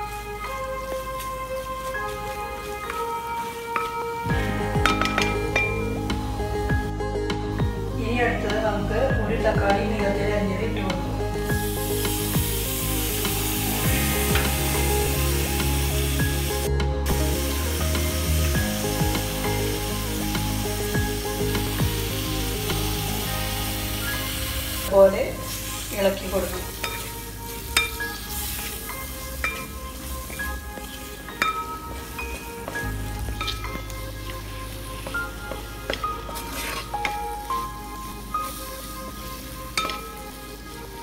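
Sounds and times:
food sizzling in a pan: 0.0 - 6.6, 11.4 - 41.0
spatula scraping a pan: 36.2 - 37.3.

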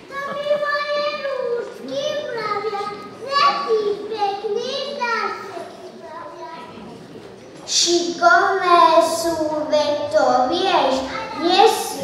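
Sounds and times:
children reciting lines: 0.0 - 12.0.

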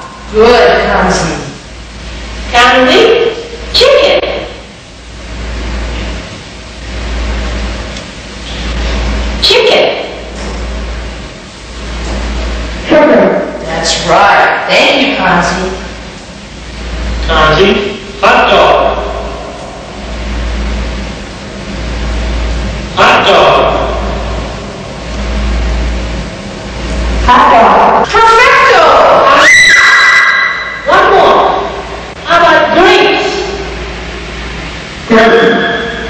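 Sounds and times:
steady low hum: 0.0 - 36.0.

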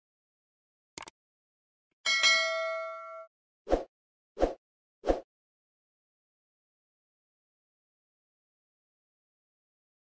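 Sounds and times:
notification bell ding: 2.1 - 3.3.

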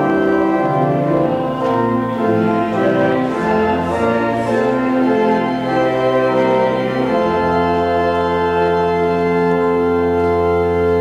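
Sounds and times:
organ playing a held chord: 0.0 - 11.0.

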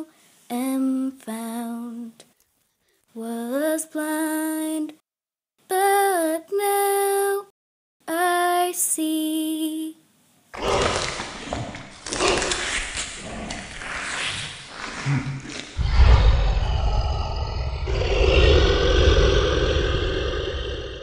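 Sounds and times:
zombies snarling and roaring: 10.6 - 21.0
deep low boom rumble: 15.8 - 21.0.

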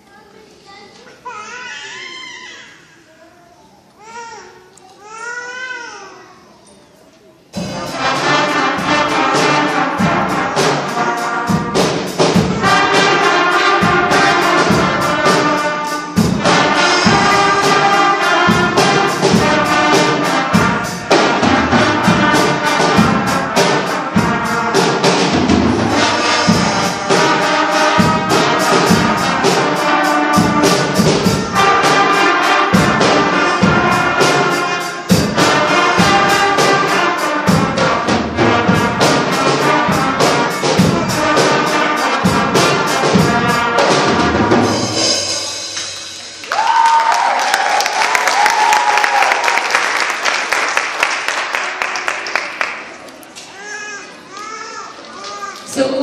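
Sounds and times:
drums keeping a beat: 7.5 - 50.6
concert band playing: 7.5 - 56.0
trumpets: 7.6 - 45.7.

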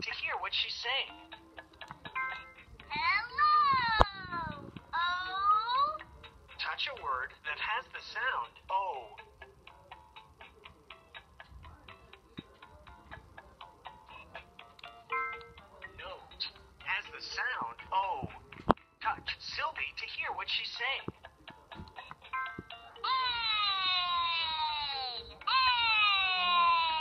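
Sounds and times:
music: 0.0 - 27.0.

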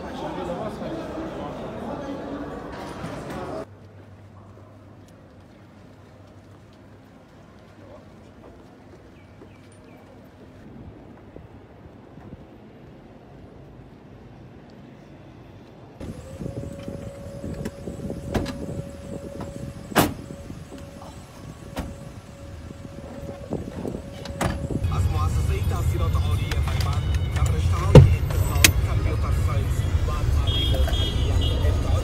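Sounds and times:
car engine rumble: 16.0 - 32.0
car door slam: 18.2 - 20.4, 27.8 - 28.3.

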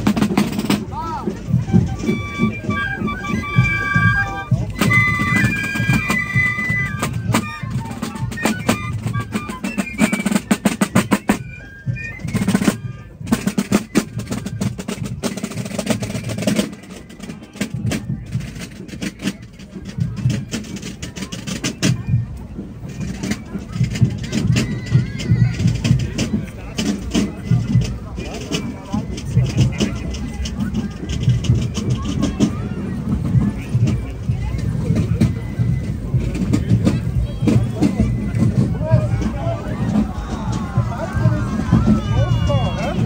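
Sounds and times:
drums rapid strokes and rolls: 0.0 - 43.0
piccolos playing a march: 0.0 - 43.0.

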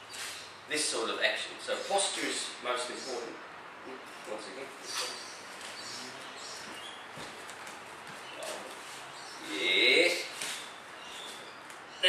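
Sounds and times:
bare feet stepping on mats: 6.6 - 9.0.

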